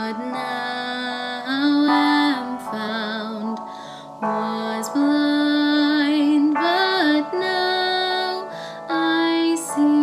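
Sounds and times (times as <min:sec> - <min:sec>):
woman singing a hymn: 0:00.0 - 0:10.0.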